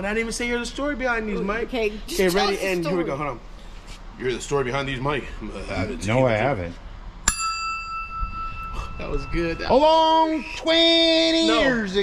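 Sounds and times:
bright ringing ding: 7.3 - 10.1.

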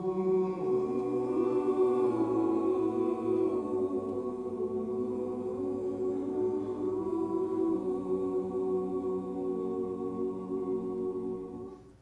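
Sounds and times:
mixed choir singing held chords: 0.0 - 12.0.

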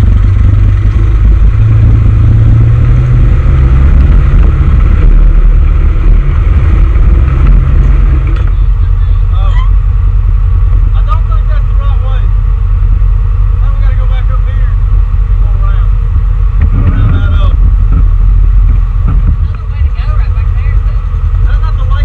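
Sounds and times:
off-road vehicle engine running: 0.0 - 22.0
people talking: 8.4 - 9.8, 10.9 - 12.3, 13.6 - 16.0, 16.8 - 17.6, 19.3 - 22.0.

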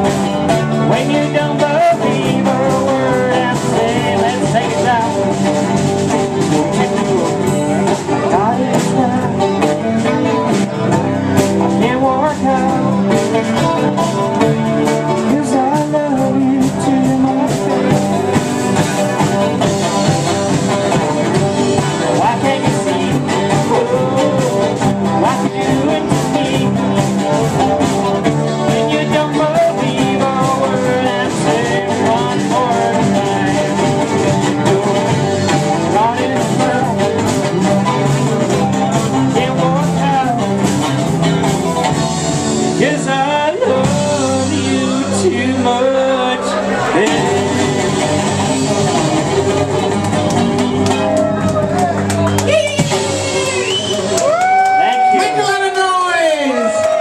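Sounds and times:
drums with steady beat: 0.0 - 56.0
bass guitar: 0.0 - 57.0
electric guitar: 0.0 - 57.0.

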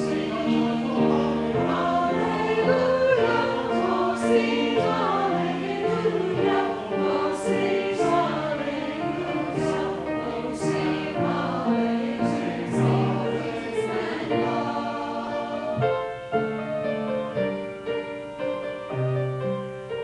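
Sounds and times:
church choir singing: 0.0 - 17.7.

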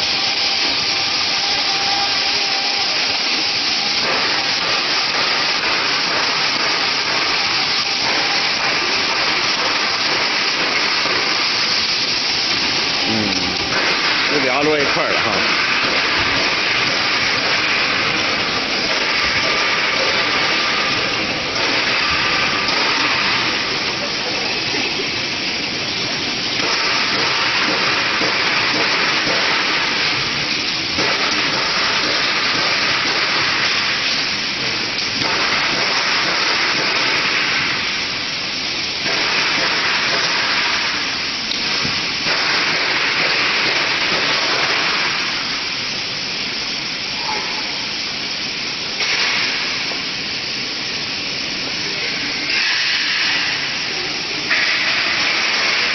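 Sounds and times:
conveyor machine running: 0.0 - 55.9.

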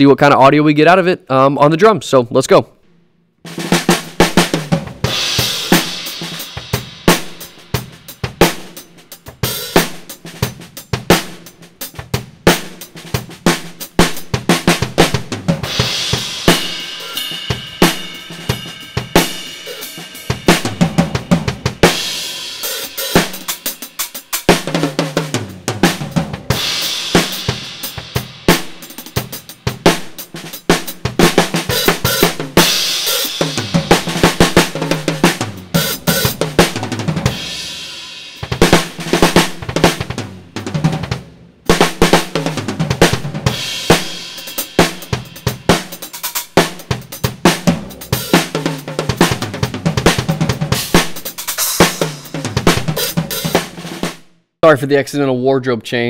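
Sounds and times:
kick and snare drum groove: 3.4 - 54.3
cymbal crashes: 5.1 - 8.6, 15.7 - 24.3, 37.3 - 38.9
hi-hat: 5.3 - 10.2, 15.8 - 21.0, 21.8 - 24.5, 43.8 - 46.5.

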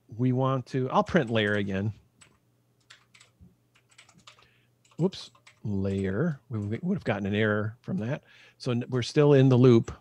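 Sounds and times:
computer keyboard typing: 1.2 - 6.9.

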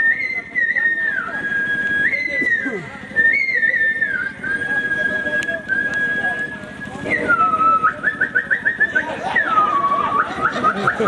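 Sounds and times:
person whistling a tune: 0.0 - 11.0.

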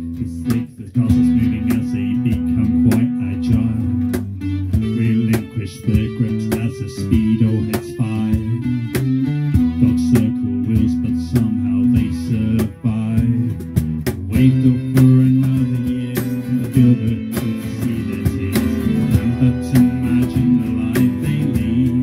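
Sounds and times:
electric bass guitar: 0.0 - 22.0
strummed acoustic guitar: 0.0 - 22.0.

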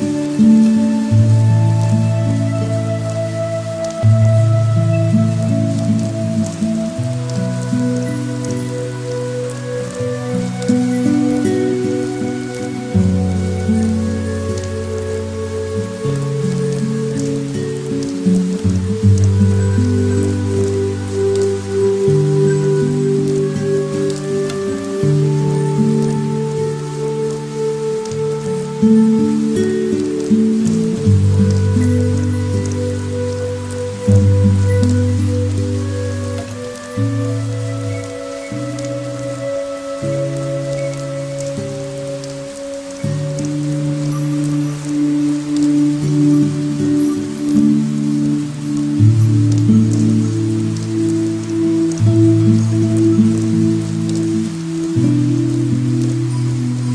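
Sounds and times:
rain falling on pavement: 0.0 - 56.9
slow instrumental music: 0.0 - 56.9.

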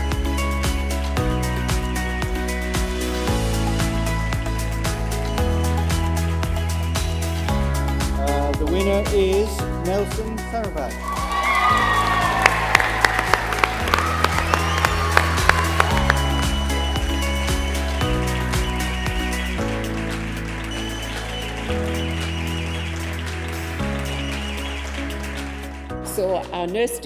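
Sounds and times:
music with bass line: 0.0 - 27.0
audience applause: 11.0 - 25.9.

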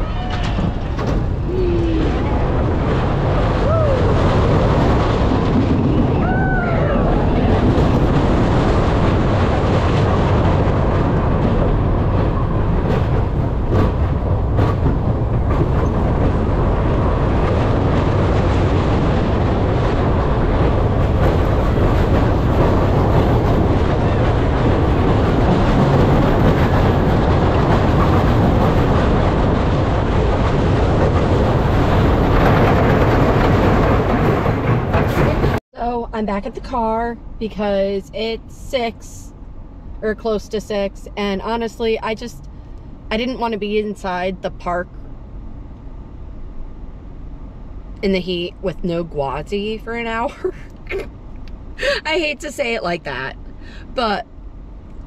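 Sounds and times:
roller coaster clatters: 0.0 - 36.0
roller coaster wheels rumbling: 0.0 - 55.0.

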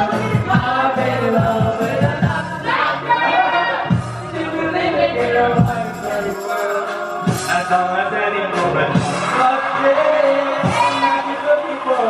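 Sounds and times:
pop backing track: 0.0 - 12.0.

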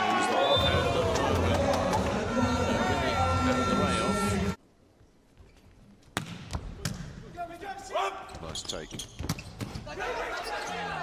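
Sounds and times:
faint indoor hall ambience: 0.0 - 11.0.

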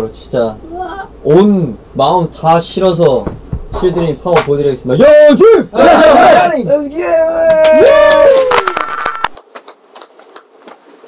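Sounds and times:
crackling static with clicks: 8.5 - 11.0.

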